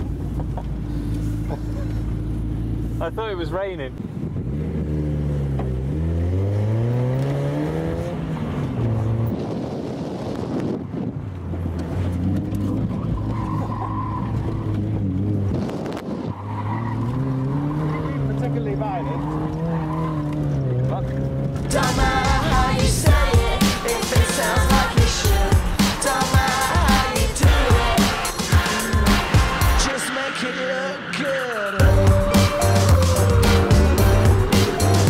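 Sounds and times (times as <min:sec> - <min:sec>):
car engine revving: 0:00.0 - 0:09.6, 0:11.5 - 0:35.0
music: 0:21.7 - 0:35.0.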